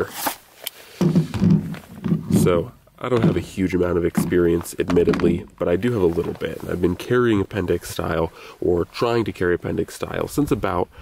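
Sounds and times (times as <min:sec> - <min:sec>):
man's voice: 0:02.3 - 0:11.0.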